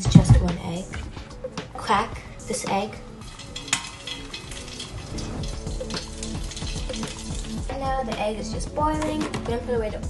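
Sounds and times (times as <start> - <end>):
egg sizzling in oil: 3.1 - 7.7.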